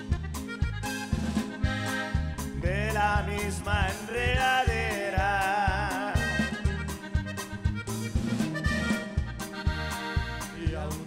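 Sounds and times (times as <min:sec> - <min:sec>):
acoustic guitar: 0:00.0 - 0:11.0
button accordion melody: 0:00.0 - 0:11.0
drum kit: 0:00.0 - 0:11.0
electric bass: 0:00.0 - 0:11.0.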